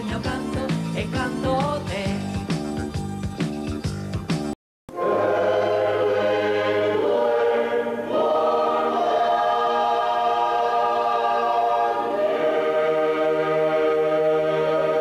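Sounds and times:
choir singing held chords: 0:04.9 - 0:15.0.

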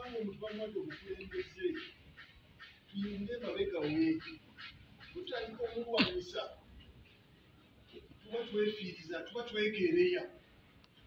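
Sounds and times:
man speaking: 0:00.0 - 0:02.0, 0:02.9 - 0:04.4, 0:05.0 - 0:06.6, 0:08.2 - 0:10.4.

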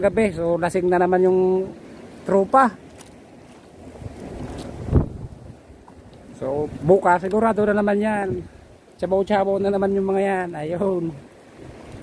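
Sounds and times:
water lapping around boat: 0:00.0 - 0:12.0
wind buffeting microphone: 0:03.7 - 0:12.0.

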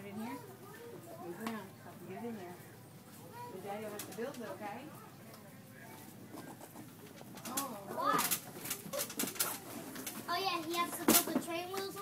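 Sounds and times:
faint voices: 0:00.0 - 0:12.0
quiet background hum: 0:00.0 - 0:12.0.

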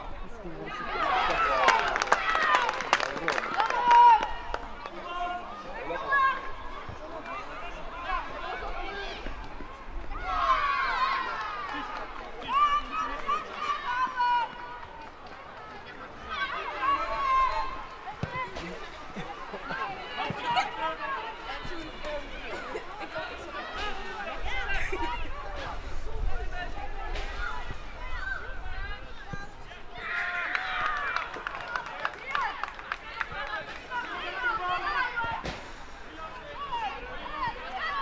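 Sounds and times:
open-air background noise: 0:00.0 - 0:38.0
young players shouting: 0:03.5 - 0:09.4, 0:10.1 - 0:14.8, 0:15.8 - 0:25.4, 0:32.2 - 0:35.5, 0:36.3 - 0:38.0.

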